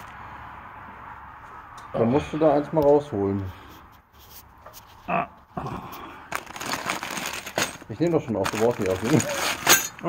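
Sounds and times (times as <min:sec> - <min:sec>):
metal parts clinking: 0:06.3 - 0:10.0
plastic bag crinkling: 0:06.3 - 0:10.0.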